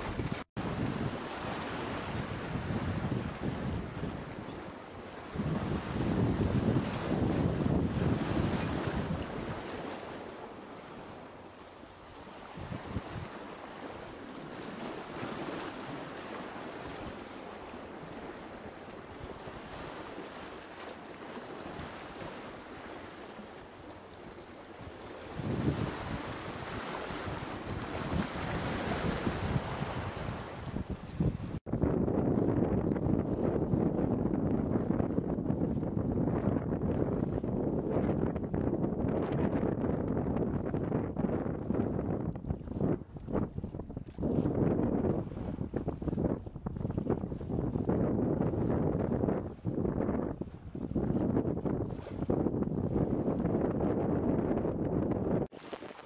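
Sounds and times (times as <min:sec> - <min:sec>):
wind buffeting microphone: 0:00.0 - 0:11.2, 0:12.3 - 0:23.0, 0:23.6 - 0:56.0
water rushing along hull: 0:00.0 - 0:56.0.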